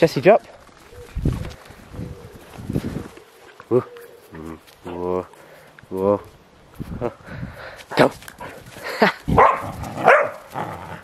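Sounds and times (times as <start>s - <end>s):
dog barking: 9.4s - 10.5s.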